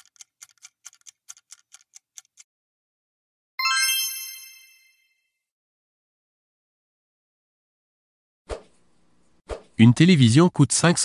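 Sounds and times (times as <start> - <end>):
bright quiz chime: 3.6 - 5.1.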